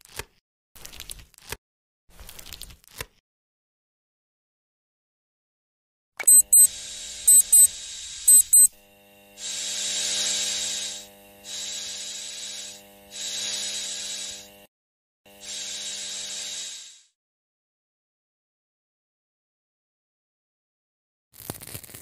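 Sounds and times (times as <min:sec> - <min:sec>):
nail drill double beeps: 0:06.2 - 0:08.8
nail drill whining and grinding: 0:06.3 - 0:14.7, 0:15.3 - 0:17.1.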